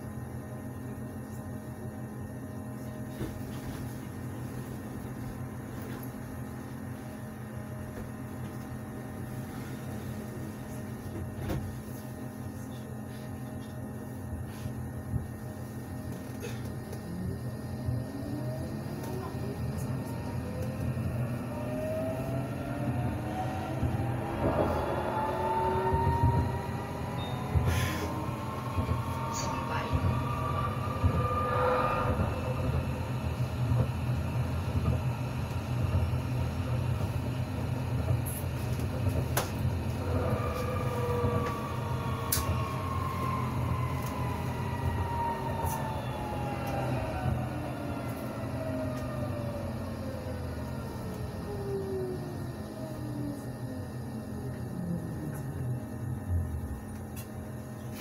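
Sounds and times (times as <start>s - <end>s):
tram running rumble: 0.0s - 58.0s
tram traction drive whining: 16.1s - 57.7s.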